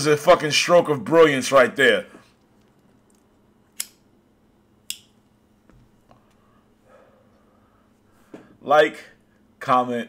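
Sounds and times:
sharp click: 0:03.8 - 0:04.0.

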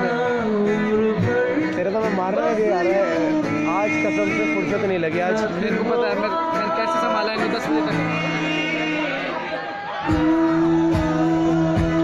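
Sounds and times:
live band music: 0:05.9 - 0:12.0.

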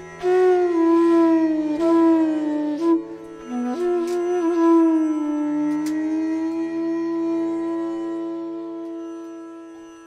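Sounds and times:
bamboo flute long low note: 0:00.0 - 0:10.0.

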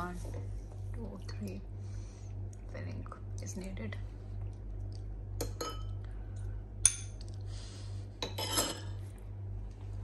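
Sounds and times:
steady low hum: 0:00.0 - 0:10.0
spoon clinking against bowls: 0:05.4 - 0:06.0, 0:08.2 - 0:09.0.

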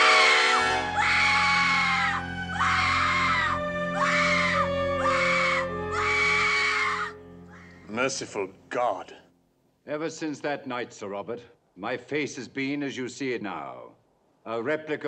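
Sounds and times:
woman screaming: 0:00.0 - 0:07.2
low orchestral chord: 0:00.0 - 0:08.7.

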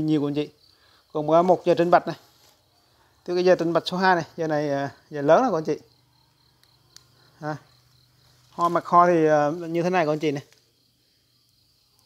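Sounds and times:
high-pitched insect chirring: 0:00.0 - 0:12.0.

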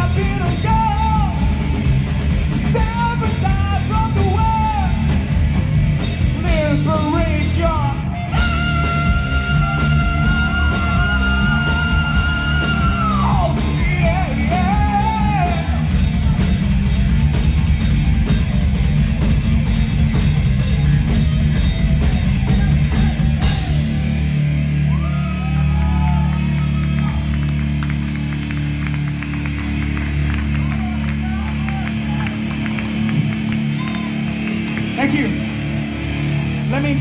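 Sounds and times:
bass guitar: 0:00.0 - 0:37.0
drum kit: 0:00.0 - 0:37.0
electric guitar: 0:00.0 - 0:37.0.

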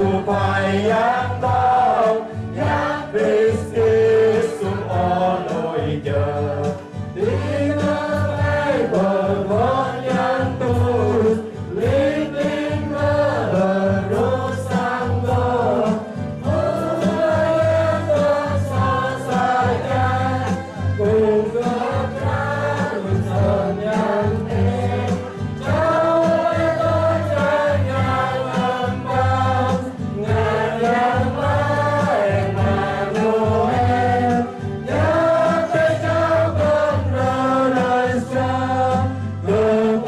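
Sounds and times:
choir singing a hymn: 0:00.0 - 0:40.0.

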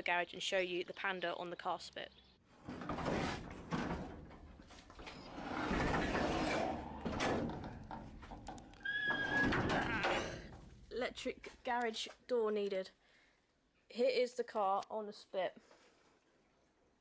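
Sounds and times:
garage door rumbling and scraping: 0:02.5 - 0:10.9
garage door squeal: 0:05.0 - 0:07.8, 0:08.8 - 0:10.4.

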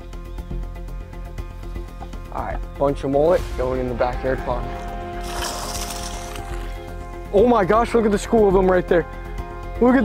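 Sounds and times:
background music: 0:00.0 - 0:10.0
water pouring and splashing: 0:05.2 - 0:06.9.

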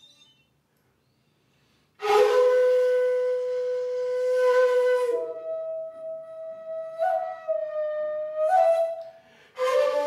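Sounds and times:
flute long breathy note: 0:08.2 - 0:10.0.

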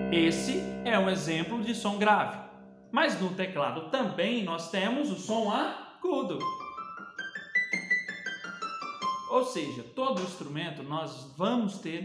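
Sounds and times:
electronic keyboard piano run: 0:00.0 - 0:02.9, 0:06.4 - 0:09.4.

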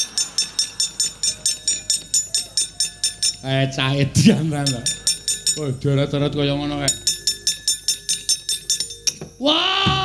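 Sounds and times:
metal plates clanking rhythmically: 0:00.0 - 0:10.0.

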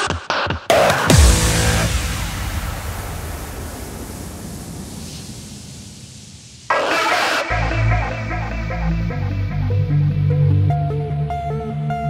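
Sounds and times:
electronic dance track: 0:00.0 - 0:10.1
heavy kick and bass: 0:00.7 - 0:06.7
burst of noise: 0:01.0 - 0:08.0
synth melody: 0:01.1 - 0:03.4.

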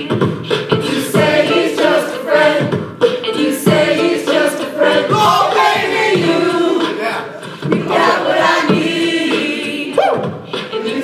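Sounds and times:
group singing pop chorus: 0:00.0 - 0:11.0
steady beat: 0:00.0 - 0:11.0.

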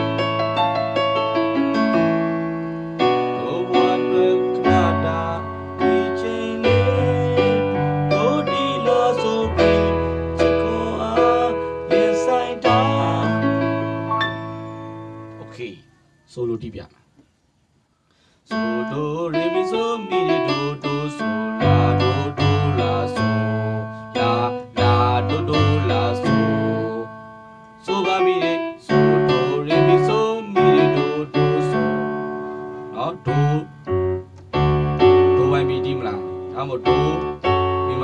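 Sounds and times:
digital piano playing: 0:00.0 - 0:16.0, 0:18.5 - 0:38.0.

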